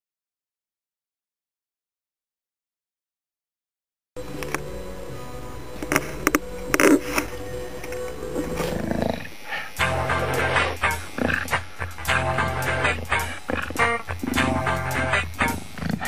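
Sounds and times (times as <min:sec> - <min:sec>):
music: 0:04.2 - 0:16.0
tattoo machine buzzing: 0:05.7 - 0:16.0.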